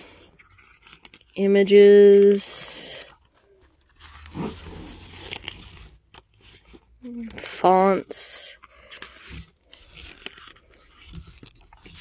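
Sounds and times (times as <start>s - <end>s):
booklet pages turning: 0.0s - 12.0s.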